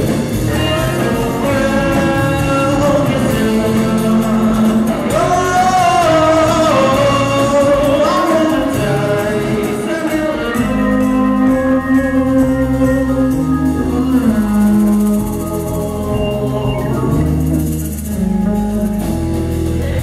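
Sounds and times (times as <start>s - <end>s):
live rock band playing: 0.0s - 20.0s.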